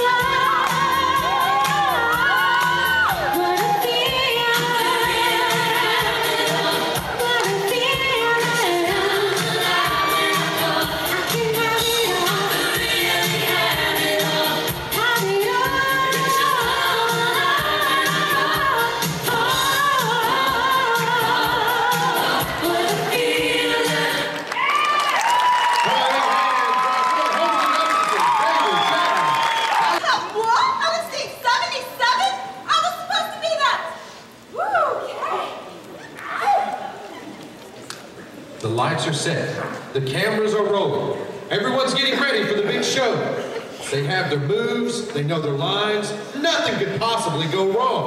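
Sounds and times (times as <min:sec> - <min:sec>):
backing music with steady beat: 0:00.0 - 0:24.5
group singing pop song: 0:00.0 - 0:24.7.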